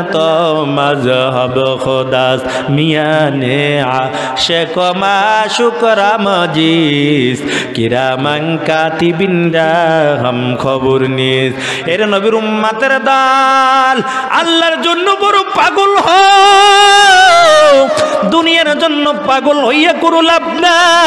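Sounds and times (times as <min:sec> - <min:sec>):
man chanting into a microphone: 0:00.0 - 0:21.0.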